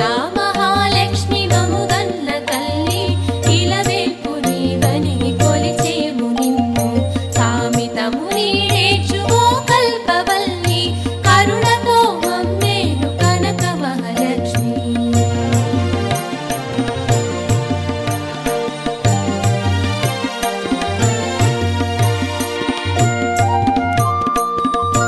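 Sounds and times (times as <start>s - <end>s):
devotional music: 0.0s - 25.0s.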